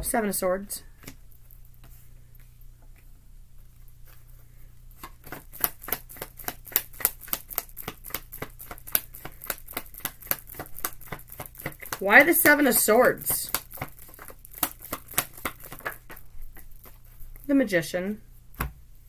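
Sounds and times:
cards being shuffled by hand: 1.0 - 17.5
crisp card slaps and flicks: 5.0 - 17.0.

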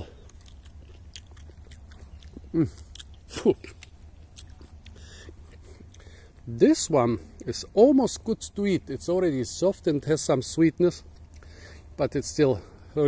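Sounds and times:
chewing soft fruit: 0.0 - 9.0, 10.5 - 12.0.

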